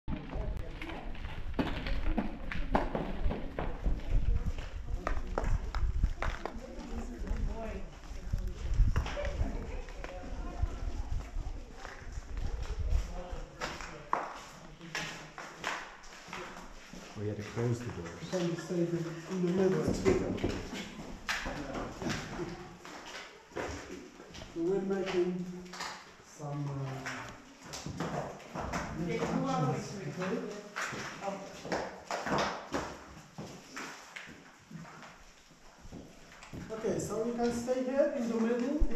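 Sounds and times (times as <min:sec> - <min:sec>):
footsteps: 0:00.1 - 0:38.9.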